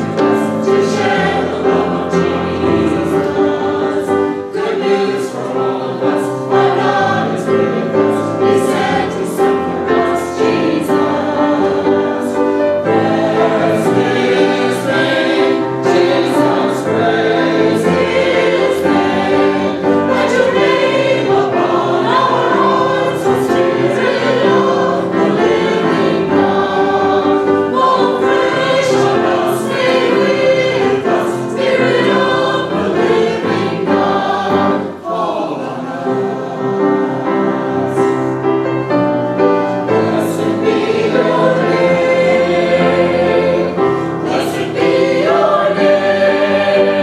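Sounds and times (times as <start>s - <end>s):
mixed choir singing: 0.0s - 47.0s.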